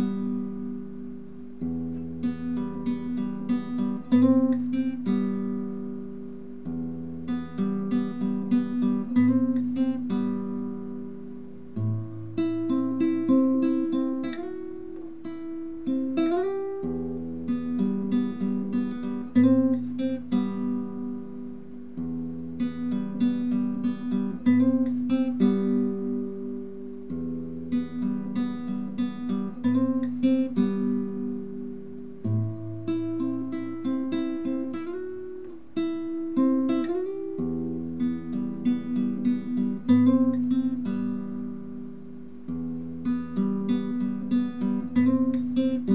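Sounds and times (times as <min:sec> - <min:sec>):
classical guitar fingerpicking: 0:00.0 - 0:45.9.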